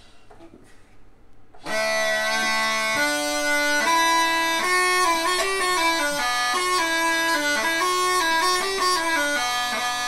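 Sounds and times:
fiddle: 1.6 - 10.0
mouth organs playing: 1.7 - 10.0.

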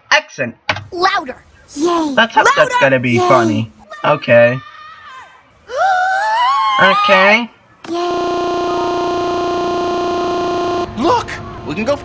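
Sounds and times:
steady synthesized buzz tone: 7.9 - 10.9.

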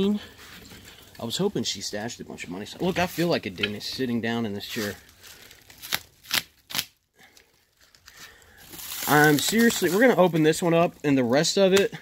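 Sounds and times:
plastic wrap crinkling: 4.6 - 11.6.

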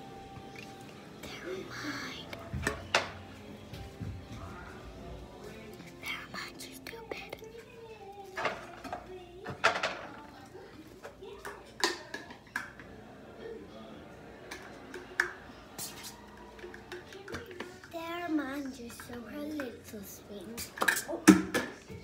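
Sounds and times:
background music: 0.0 - 10.3
faint voice: 1.2 - 2.7.

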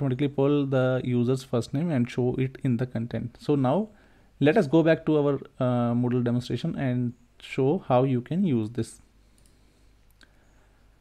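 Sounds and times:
faint computer mouse clicks: 9.4 - 10.4.

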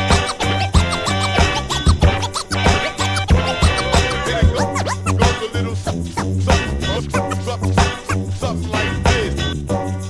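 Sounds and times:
turntable scratching: 0.0 - 8.6
steady beat with heavy bass: 0.0 - 9.6.

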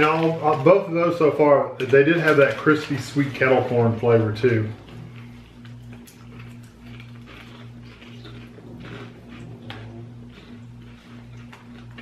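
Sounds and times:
people chewing crunchy food: 0.0 - 12.0
steady low hum: 0.0 - 12.0.

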